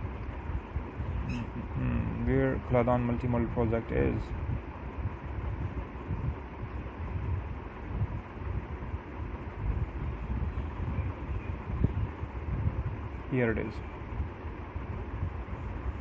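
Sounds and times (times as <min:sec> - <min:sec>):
faint steady hum: 0:00.0 - 0:16.0
low rumbling background noise: 0:00.0 - 0:16.0.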